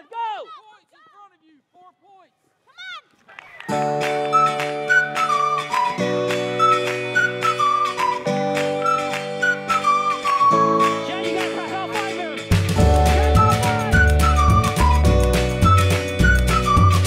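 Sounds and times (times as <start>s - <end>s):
high sliding melody: 3.8s - 17.0s.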